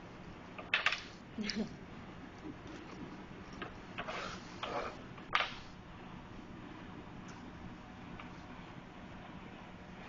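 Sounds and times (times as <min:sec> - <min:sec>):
rustling scrapes on cutting board: 0:04.0 - 0:05.0.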